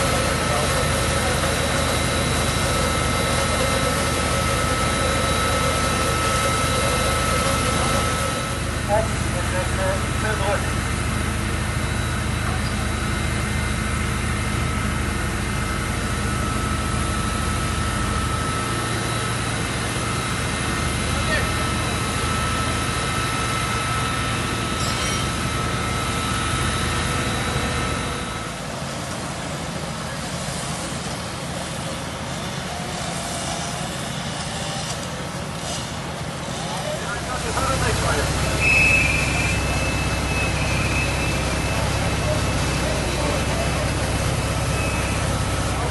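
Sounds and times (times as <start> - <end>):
diesel engines rumbling: 0.0 - 45.9
pump high-pitched whine: 0.0 - 45.9.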